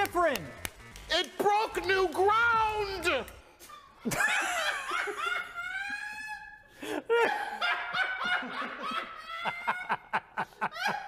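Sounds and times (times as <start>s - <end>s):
man laughing hard: 4.0s - 11.0s.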